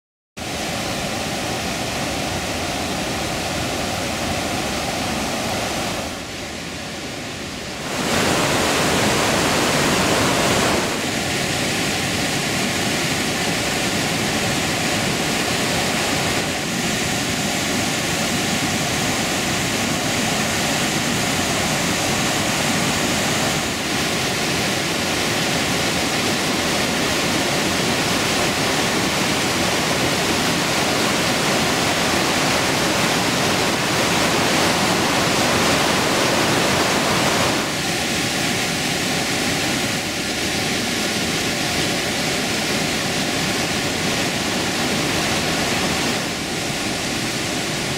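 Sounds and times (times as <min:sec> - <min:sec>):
white water rushing: 0:00.4 - 0:47.9.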